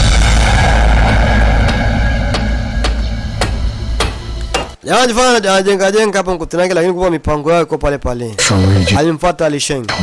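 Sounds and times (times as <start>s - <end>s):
loud deep rumble: 0.0s - 4.6s.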